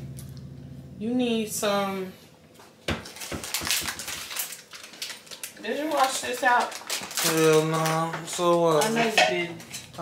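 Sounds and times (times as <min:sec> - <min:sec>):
dishes and utensils clattering: 0:08.2 - 0:10.0.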